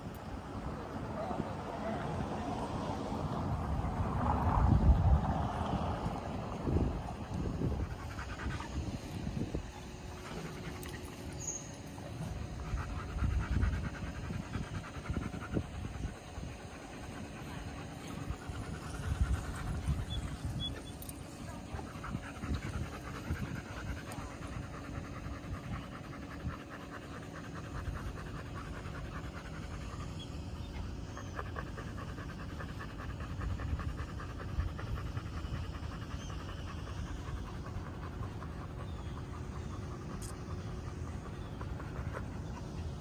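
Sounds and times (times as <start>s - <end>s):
dog panting: 1.0s - 43.0s.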